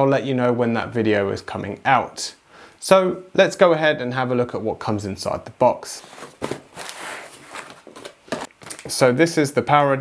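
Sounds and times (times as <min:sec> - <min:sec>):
cardboard box rustling: 0:06.0 - 0:08.9
plastic packaging rustling: 0:06.0 - 0:09.0.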